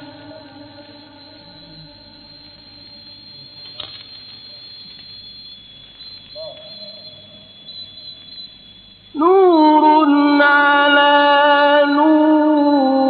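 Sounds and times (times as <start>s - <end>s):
man reciting: 9.2s - 13.0s.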